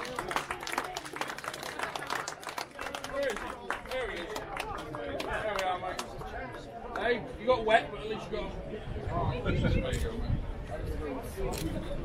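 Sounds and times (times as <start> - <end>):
small crowd applauding: 0.0 - 7.2.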